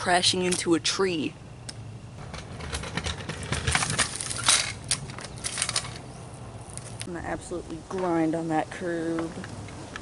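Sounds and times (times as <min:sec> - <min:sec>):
wheels crunching dry leaves: 0:02.6 - 0:07.1.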